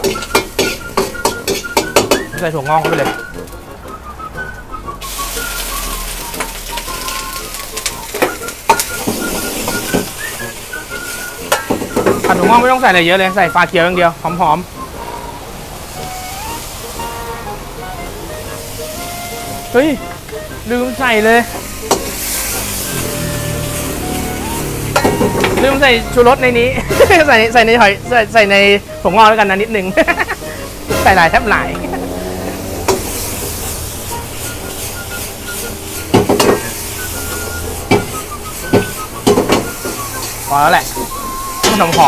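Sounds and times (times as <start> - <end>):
metal wok and ladle clanks: 0.0 - 3.2, 11.4 - 12.5, 21.6 - 22.5, 25.0 - 25.6
vegetables sizzling in hot oil: 0.0 - 3.5, 5.0 - 42.0.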